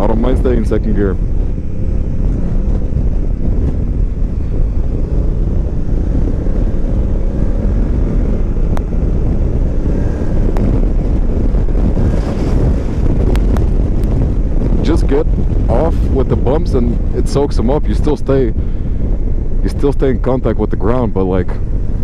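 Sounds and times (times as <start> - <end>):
motorcycle engine running: 0.0 - 22.0
wind rushing over microphone: 0.0 - 22.0.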